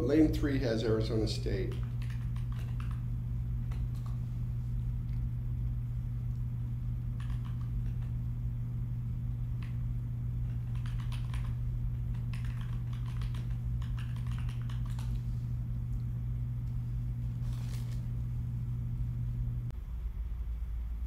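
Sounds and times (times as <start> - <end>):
low electrical hum: 0.0 - 21.0
keyboard typing: 1.6 - 4.2, 7.1 - 8.2, 10.4 - 15.2.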